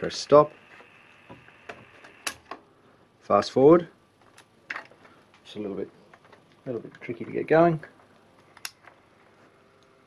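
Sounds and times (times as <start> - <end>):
faint high whine: 0.0 - 4.0
tape deck mechanical clicks: 1.7 - 2.6.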